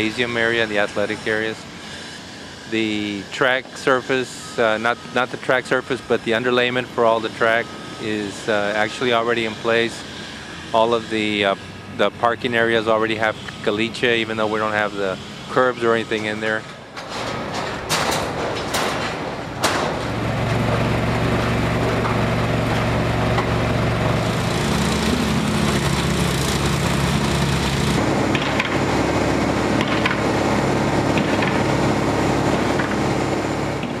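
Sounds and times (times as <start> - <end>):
truck engine running loudly: 0.0 - 34.0
sharp knocks: 17.0 - 20.2.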